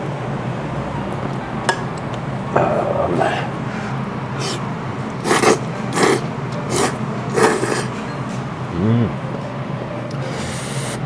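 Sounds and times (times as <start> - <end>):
person slurping noodles: 4.4 - 7.9, 10.3 - 11.0.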